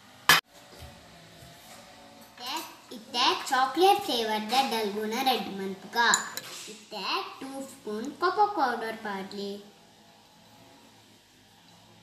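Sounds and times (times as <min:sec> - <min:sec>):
child talking: 0:02.4 - 0:09.7
metal spoon clinking ceramic bowl: 0:06.1 - 0:06.6.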